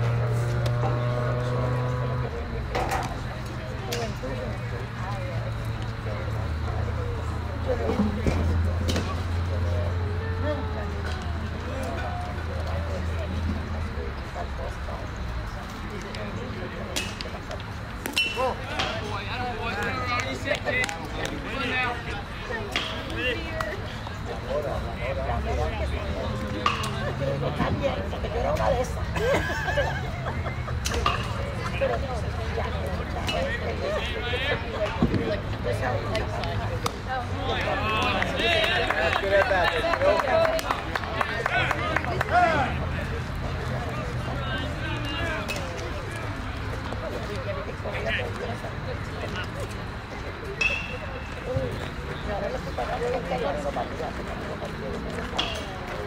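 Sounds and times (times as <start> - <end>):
chatter of voices: 0.0 - 56.0
players and spectators calling out: 0.0 - 56.0.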